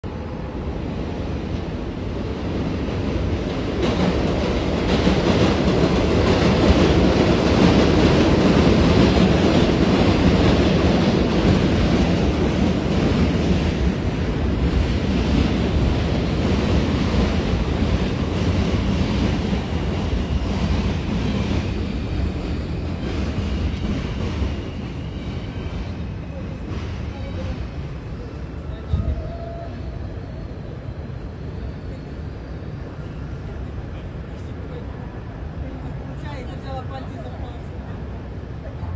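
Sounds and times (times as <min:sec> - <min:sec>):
subway train rumbling on steel track: 0:00.0 - 0:38.9.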